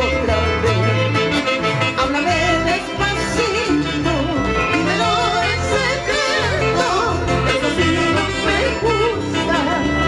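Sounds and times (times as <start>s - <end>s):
folk band with bass guitar: 0.0s - 10.0s
woman singing with vibrato: 2.0s - 10.0s.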